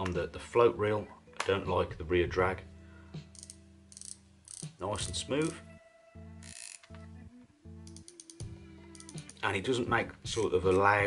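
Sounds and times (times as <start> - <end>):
fishing reel ratcheting whirr: 3.4 - 4.8, 6.4 - 6.9, 8.0 - 8.4.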